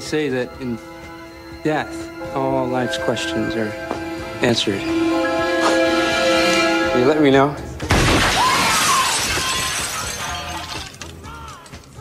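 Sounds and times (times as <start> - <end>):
faint wavering tone: 0.0 - 7.8
loud shattering crash: 7.8 - 11.0.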